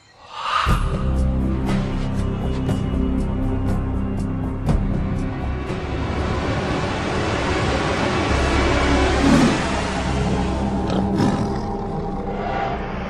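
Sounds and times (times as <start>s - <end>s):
tiger roaring: 9.2s - 12.5s.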